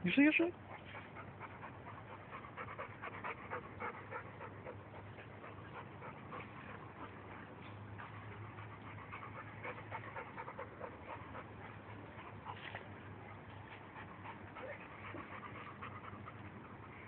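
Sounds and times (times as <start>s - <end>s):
dog panting: 0.1s - 17.0s.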